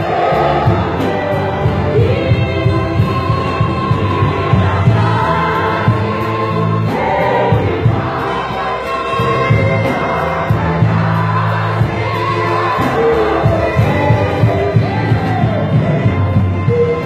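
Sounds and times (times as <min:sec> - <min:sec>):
gospel choir singing: 0:00.0 - 0:17.0.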